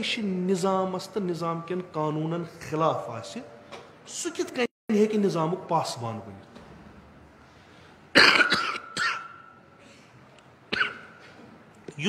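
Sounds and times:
man coughing: 8.1 - 9.5, 10.7 - 11.4.

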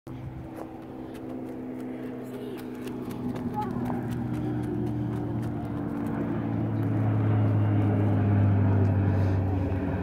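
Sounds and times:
motor humming: 0.1 - 10.0.

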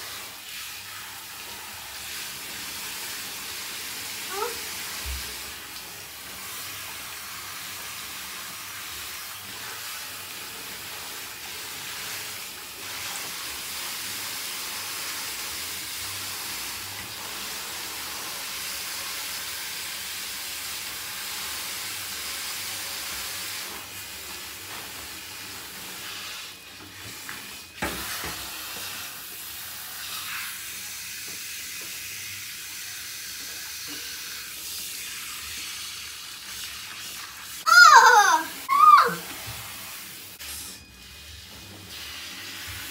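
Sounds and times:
shower spraying in bathtub: 0.0 - 42.9.

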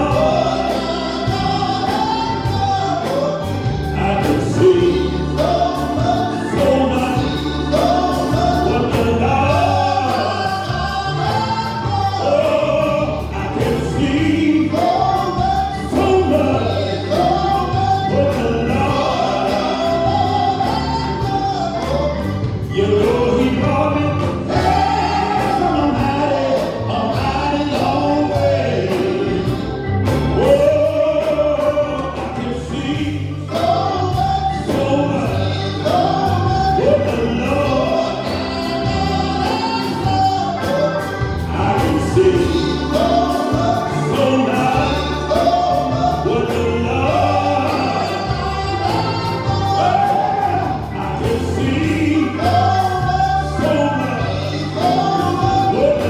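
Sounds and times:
gospel choir with accompaniment: 0.0 - 56.0.

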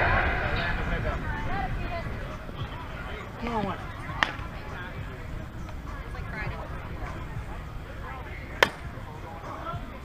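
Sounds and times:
faint voices: 0.0 - 10.0
bat hitting softball: 4.2 - 4.5, 8.6 - 9.2.

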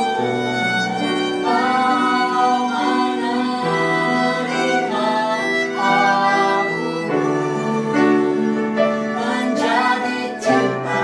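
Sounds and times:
woman and man singing: 1.4 - 11.0.

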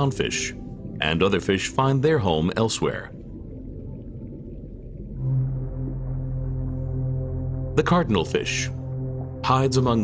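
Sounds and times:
low ambient drone: 0.0 - 10.0.

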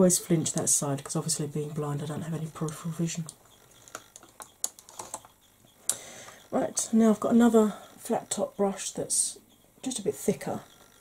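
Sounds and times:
makeup brushes clicking and tapping: 0.0 - 9.2.

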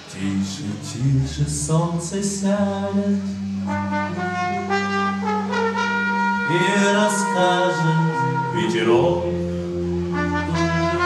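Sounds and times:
sustained bass note: 0.3 - 11.0
saxophone melody: 0.4 - 11.0.

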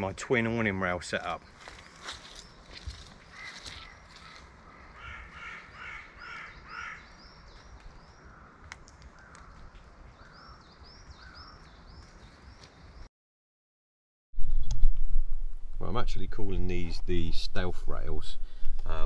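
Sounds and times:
crow cawing: 3.3 - 7.2, 8.2 - 10.6.

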